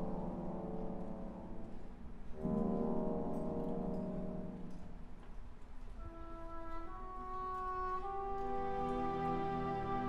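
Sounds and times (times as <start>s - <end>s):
orchestra playing ballet music: 6.0s - 10.0s.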